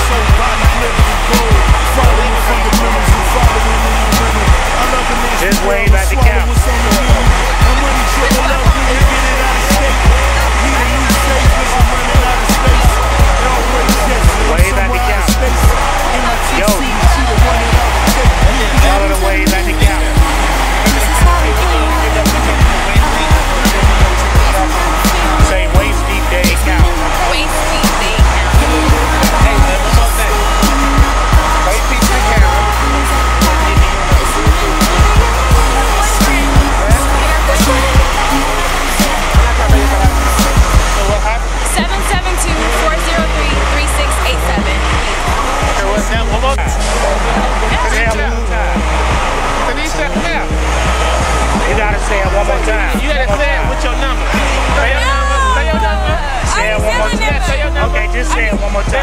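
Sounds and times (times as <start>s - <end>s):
loud music with heavy bass: 0.0s - 59.0s
people talking: 0.0s - 59.0s.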